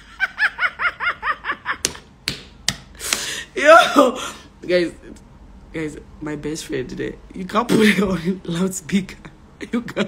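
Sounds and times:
woman laughing: 0.0 - 2.0, 9.6 - 10.0.

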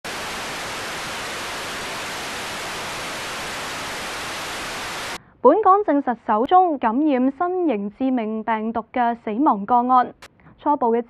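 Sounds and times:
television static hiss: 0.0 - 5.2.

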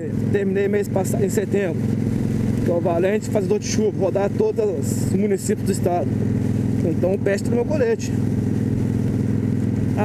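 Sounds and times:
motorcycle engine running steadily: 0.0 - 10.0
wind and road noise: 0.0 - 10.0.

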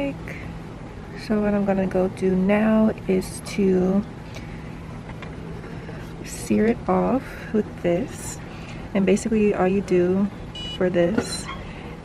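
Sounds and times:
faint hum with hiss: 0.0 - 12.0.

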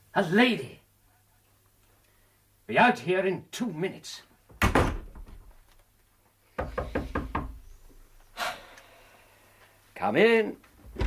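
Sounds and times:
knocking on a door: 6.6 - 7.6.

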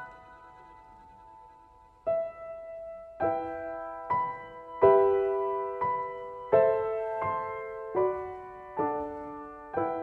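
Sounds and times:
soft piano chords: 0.0 - 10.0.

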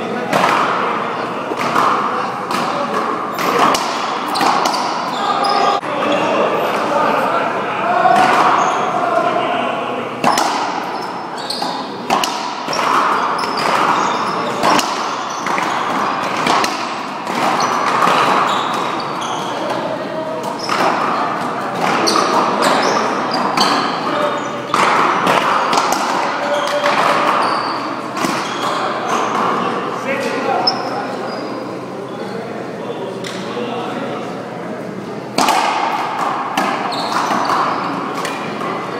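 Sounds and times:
people's voices echoing: 0.0 - 38.9
racquetball ball cracks: 11.6 - 18.9.

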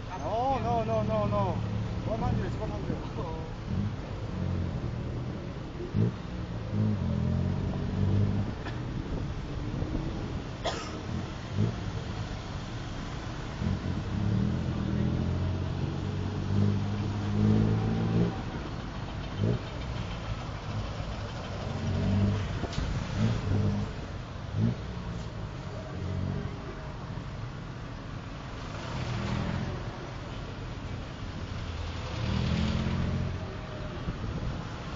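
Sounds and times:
road and traffic noise: 0.0 - 34.9.

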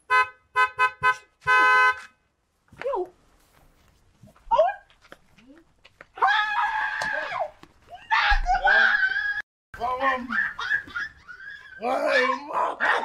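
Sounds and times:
woman shouting excitedly: 11.8 - 12.6.

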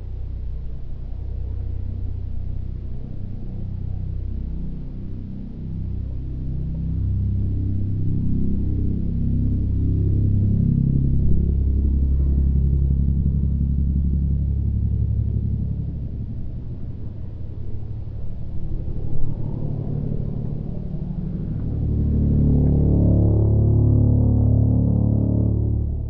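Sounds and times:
biplane engine rumble: 0.0 - 26.0.

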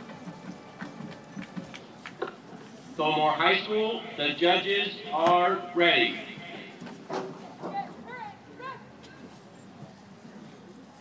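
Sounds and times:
low uneven murmur: 0.0 - 11.0.

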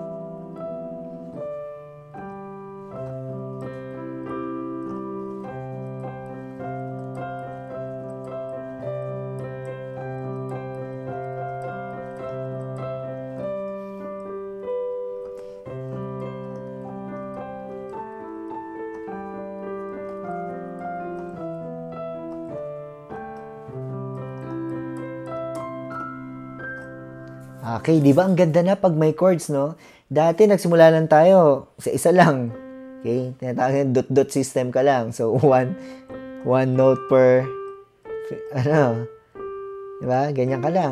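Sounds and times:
digital piano melody with chords: 0.0 - 40.9.

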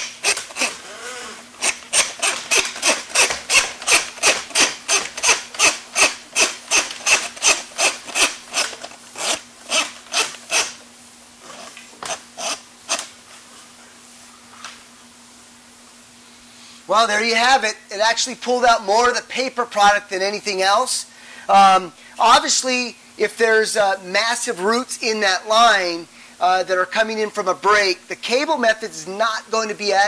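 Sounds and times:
drain snake cable scraping: 0.0 - 10.8.

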